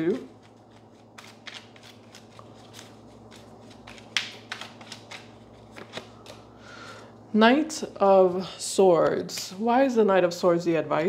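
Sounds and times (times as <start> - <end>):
cards being shuffled: 0.0 - 6.5.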